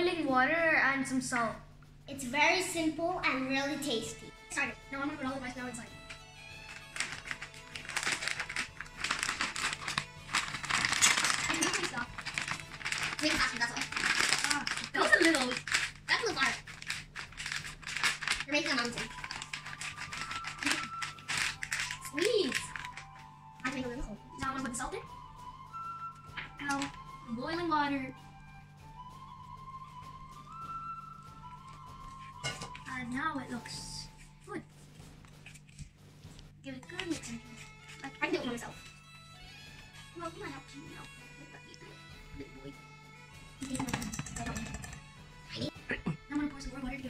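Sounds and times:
background music with held notes: 0:00.0 - 0:47.0
plastic bag crinkling: 0:06.1 - 0:23.2, 0:26.4 - 0:27.0
whisk clattering in metal bowl: 0:43.6 - 0:45.0.

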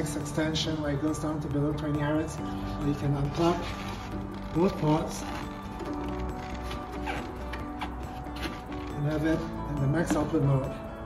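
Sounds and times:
music with held tones: 0:00.0 - 0:11.0
faint rubbing of foam plug: 0:02.6 - 0:10.2.

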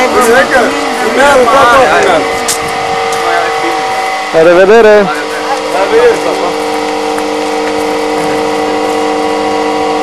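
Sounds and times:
steady droning hum: 0:00.0 - 0:10.0.

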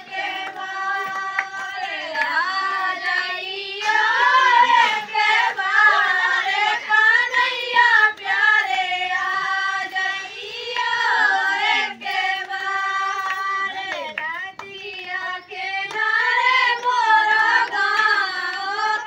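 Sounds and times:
hand claps keeping time: 0:00.0 - 0:19.0
women and girls singing together: 0:00.0 - 0:19.0.

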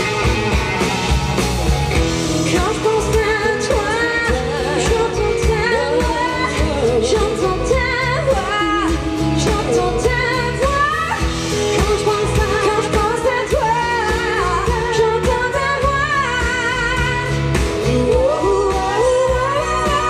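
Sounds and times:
bass: 0:00.0 - 0:20.0
drums: 0:00.0 - 0:20.0
electric guitar: 0:00.0 - 0:20.0
woman singing: 0:02.2 - 0:20.0.

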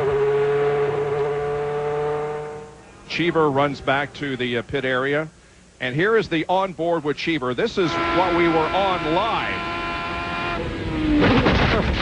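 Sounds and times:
race car engine high pitch: 0:00.0 - 0:04.8, 0:07.7 - 0:12.0.

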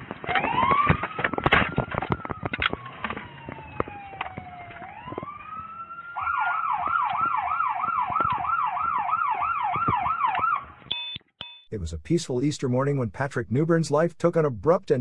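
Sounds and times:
police siren wailing and yelping: 0:00.2 - 0:10.8.

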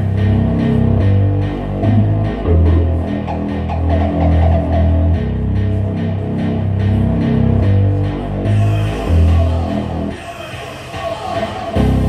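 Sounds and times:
heavy held bass notes: 0:00.0 - 0:10.3, 0:11.6 - 0:12.0.

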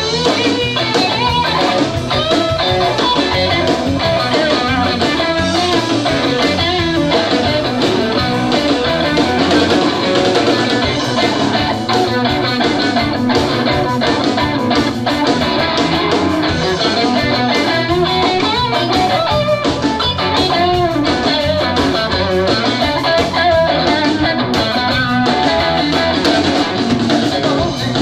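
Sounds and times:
bass guitar: 0:00.0 - 0:28.0
drums: 0:00.0 - 0:28.0
electric guitar lead: 0:00.0 - 0:28.0.

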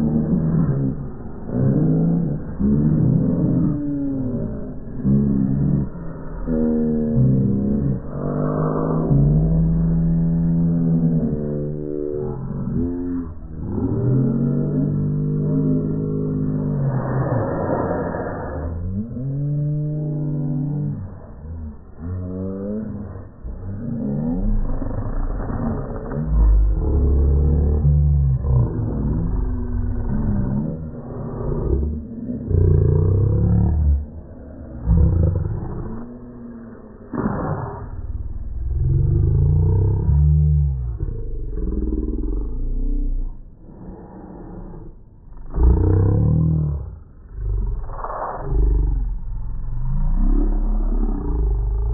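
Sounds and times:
slowed deep cartoon voice: 0:00.0 - 0:51.9.

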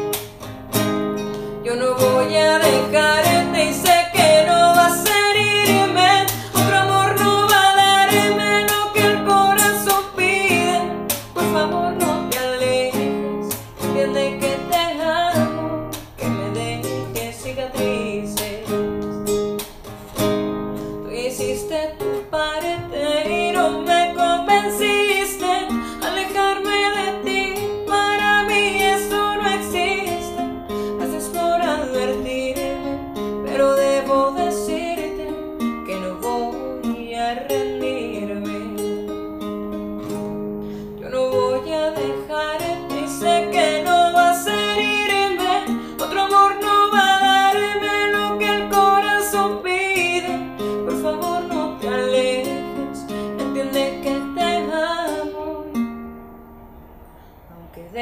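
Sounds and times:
classical guitar playing: 0:00.0 - 0:57.4
woman singing a slow ballad: 0:01.4 - 0:19.4, 0:20.7 - 0:39.3, 0:40.8 - 0:55.9, 0:57.5 - 0:58.0.

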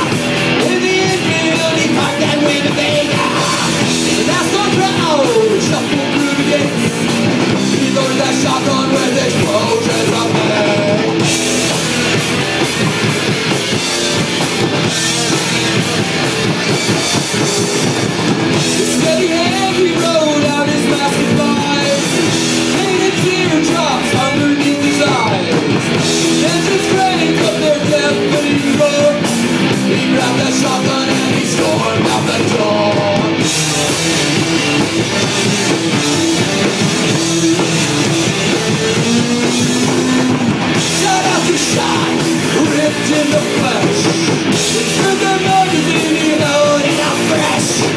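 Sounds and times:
bass guitar: 0:00.0 - 0:47.9
drum kit: 0:00.0 - 0:47.9
electric guitars: 0:00.0 - 0:47.9
live rock band playing: 0:00.0 - 0:47.9.

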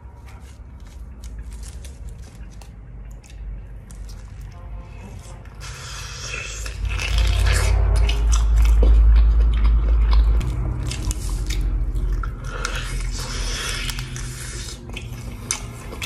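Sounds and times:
biting and chewing chicken: 0:00.0 - 0:16.0
deep low rumble: 0:06.4 - 0:16.0.

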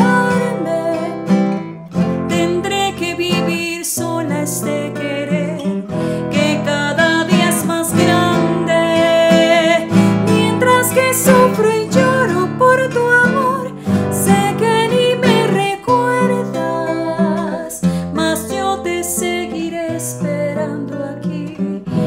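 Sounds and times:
woman singing with vibrato: 0:00.0 - 0:01.4, 0:02.3 - 0:22.0
nylon-string guitar: 0:00.0 - 0:22.0.

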